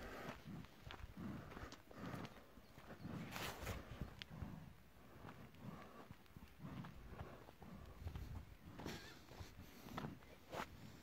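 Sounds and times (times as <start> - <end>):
footsteps on stony earth: 0.0 - 11.0.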